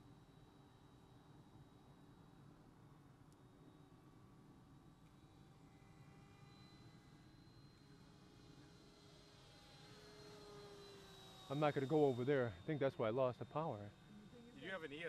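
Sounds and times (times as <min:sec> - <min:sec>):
distant rc jet whine: 0:03.4 - 0:15.0.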